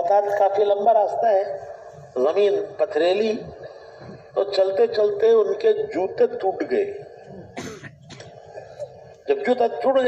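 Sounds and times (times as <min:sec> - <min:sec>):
man clearing throat: 0:07.3 - 0:08.9.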